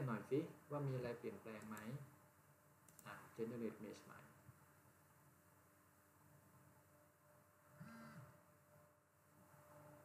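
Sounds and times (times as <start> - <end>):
faint pitched sound: 7.2 - 10.0.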